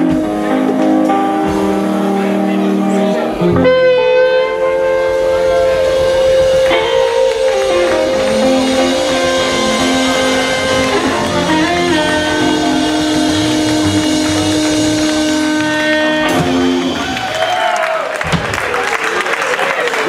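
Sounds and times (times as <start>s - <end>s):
harmonica bending notes: 0.0s - 17.4s
electric bass: 0.0s - 17.7s
electric guitar: 0.0s - 17.7s.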